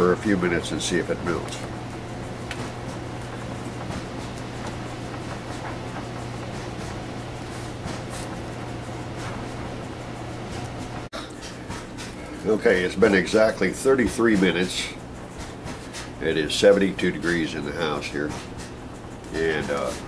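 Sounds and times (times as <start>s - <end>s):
constant low hum: 0.0s - 20.0s.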